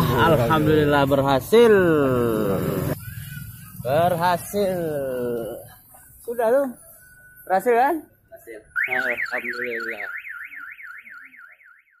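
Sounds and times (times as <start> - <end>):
car alarm siren warbling: 8.6 - 12.0.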